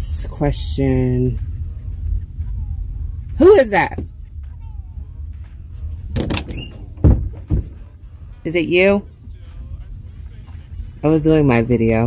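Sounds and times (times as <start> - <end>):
door thuds: 6.1 - 7.9.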